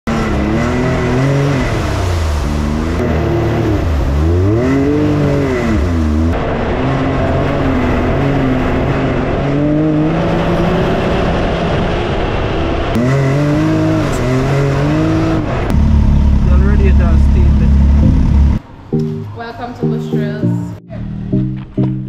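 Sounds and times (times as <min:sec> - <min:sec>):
off-road vehicle engine revving: 0:00.0 - 0:18.6.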